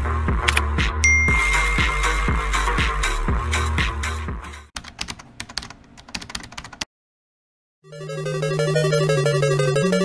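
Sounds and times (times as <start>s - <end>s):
computer keyboard typing: 4.8s - 6.9s.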